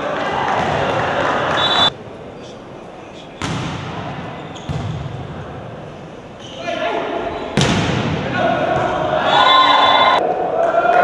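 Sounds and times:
volleyball being struck: 3.4s - 4.0s, 7.6s - 8.2s
players shouting: 6.4s - 11.0s.

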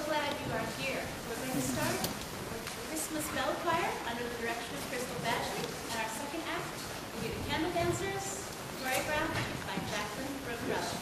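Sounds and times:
murmur of voices: 0.1s - 11.0s.

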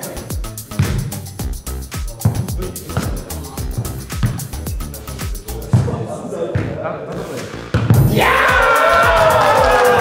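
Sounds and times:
ball thumping on hard floor: 0.7s - 1.2s, 2.2s - 3.2s, 3.8s - 4.4s, 5.7s - 6.8s, 7.7s - 8.1s
players' voices: 2.0s - 9.4s.

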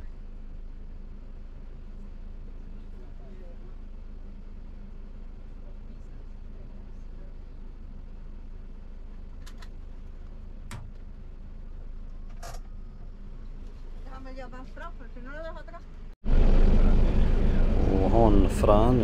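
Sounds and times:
bus engine humming: 0.0s - 19.0s.

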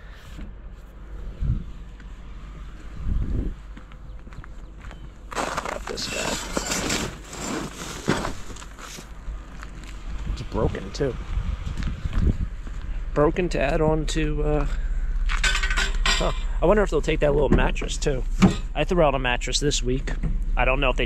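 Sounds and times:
wire grate scraping and rattling: 5.3s - 9.0s.

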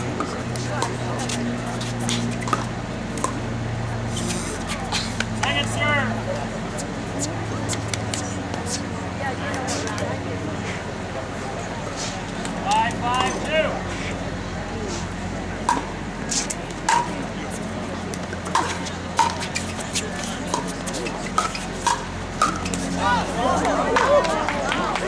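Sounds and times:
voices: 0.0s - 25.0s.

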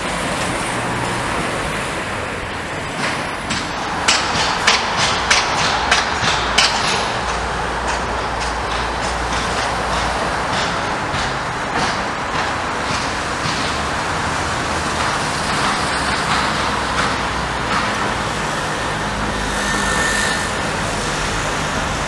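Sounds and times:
cars going by: 0.0s - 22.0s.

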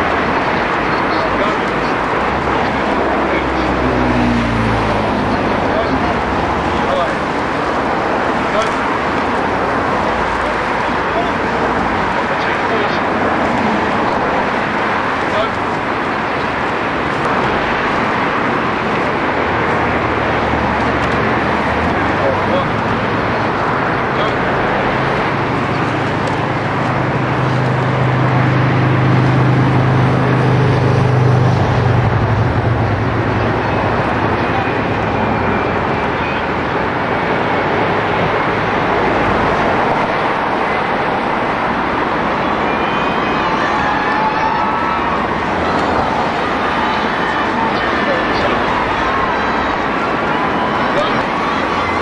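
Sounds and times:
low engine hum: 0.0s - 43.8s.

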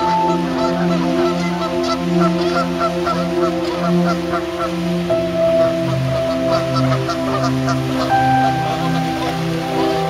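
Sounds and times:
geese honking: 0.0s - 10.0s
slow background music: 0.0s - 10.0s.

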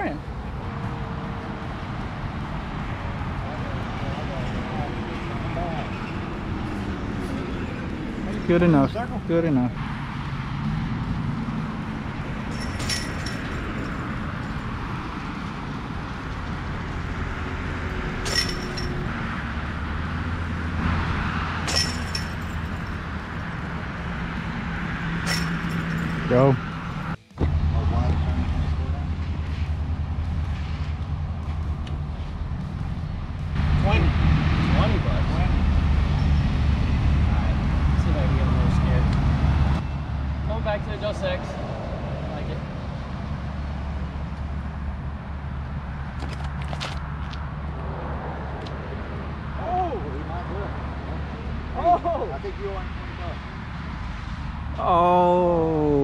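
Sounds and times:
road traffic rumble: 0.0s - 56.0s
discs clinking on metal chains: 12.5s - 14.8s, 18.2s - 19.1s, 21.6s - 23.1s, 25.2s - 26.5s.

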